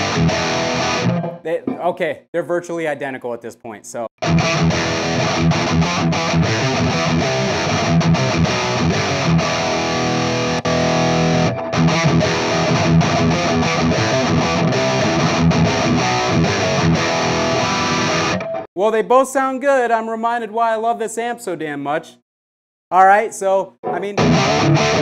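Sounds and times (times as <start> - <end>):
distorted electric guitar riffing: 0.0 - 1.5, 4.2 - 18.6, 23.9 - 25.0.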